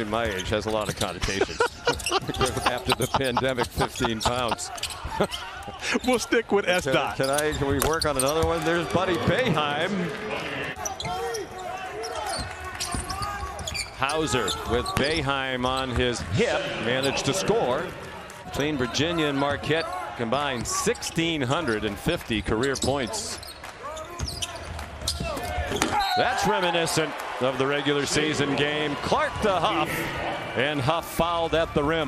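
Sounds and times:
players calling out: 0:00.1 - 0:32.0.

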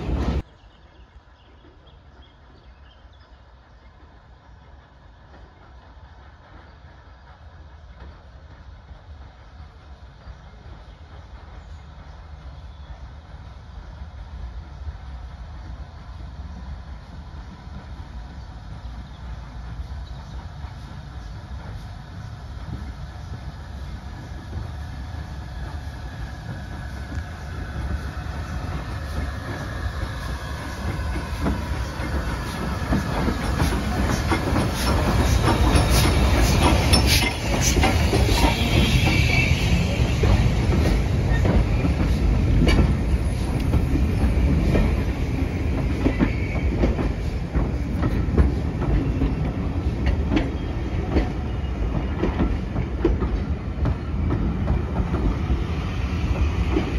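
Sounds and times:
steam train rumble: 0:00.0 - 0:56.9
wheels clicking over rail joints: 0:26.4 - 0:39.2, 0:40.0 - 0:55.5.

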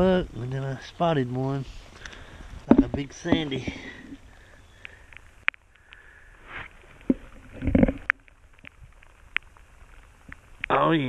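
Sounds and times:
small stones clicking: 0:06.9 - 0:10.7.

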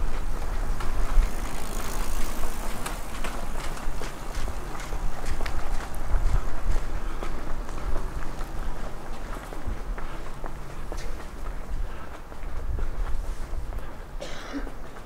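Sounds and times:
footsteps on block paving: 0:00.0 - 0:15.0
quiet town background noise: 0:00.0 - 0:15.0.

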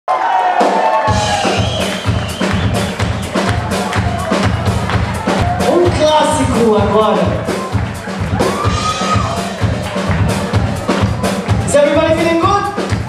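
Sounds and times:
live band playing: 0:00.4 - 0:13.0
deep drums steady beat: 0:01.0 - 0:13.0.

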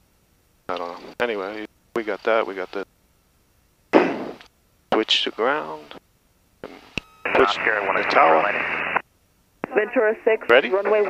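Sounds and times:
radio hiss burst: 0:06.6 - 0:09.0.

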